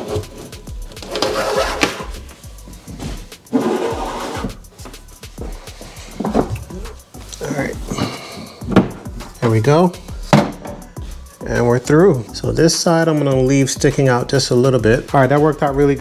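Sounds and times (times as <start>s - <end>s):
plastic tube scraping through metal: 0.0s - 2.2s, 3.5s - 4.6s
background music: 0.0s - 16.0s.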